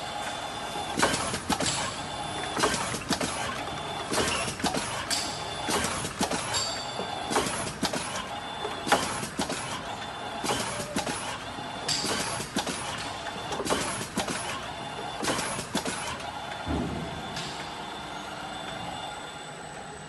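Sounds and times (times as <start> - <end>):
machine running: 0.0 - 20.0.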